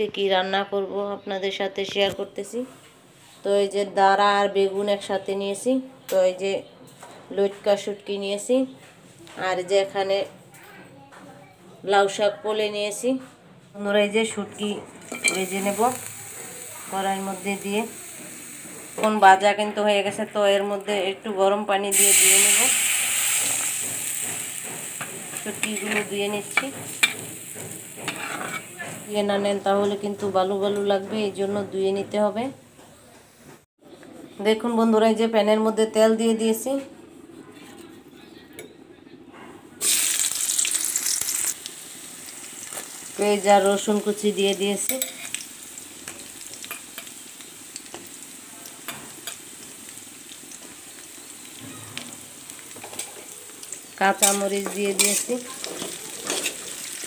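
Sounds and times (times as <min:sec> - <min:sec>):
onions sizzling in hot oil: 0:15.1 - 0:20.6, 0:21.8 - 0:29.6, 0:39.8 - 0:57.0
water hissing in hot wok: 0:15.3 - 0:19.1, 0:21.9 - 0:25.6, 0:39.8 - 0:43.7.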